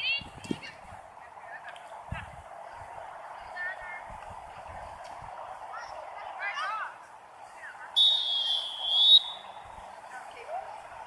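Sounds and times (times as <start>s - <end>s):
referee's whistle blast: 8.0s - 9.5s.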